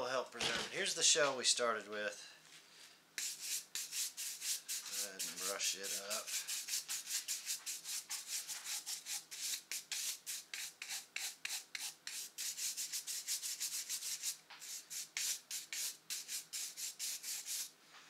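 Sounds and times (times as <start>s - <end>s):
brush scrubbing metal shell: 3.2s - 17.7s.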